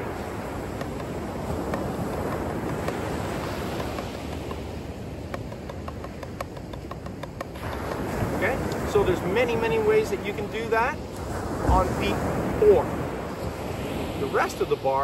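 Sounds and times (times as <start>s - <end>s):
surf: 0.0s - 4.8s, 5.4s - 15.0s
wind: 0.0s - 15.0s
drumsticks tapping practice pad: 0.7s - 3.0s, 3.7s - 8.1s.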